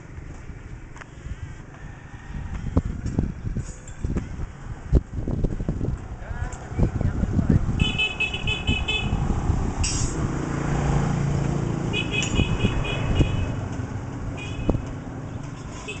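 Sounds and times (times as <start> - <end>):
vehicle engine hum passing: 1.7 - 16.0.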